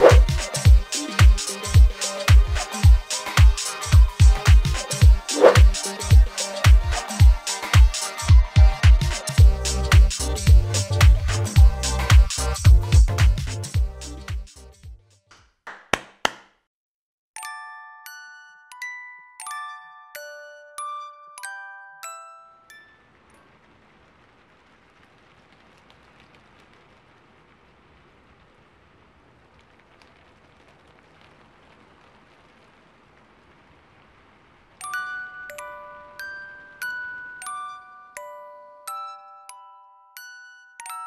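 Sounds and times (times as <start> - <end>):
faint rain-like hiss: 0.0 - 14.7, 22.0 - 39.4
glockenspiel-like chime ringing: 17.4 - 23.1, 34.8 - 41.0.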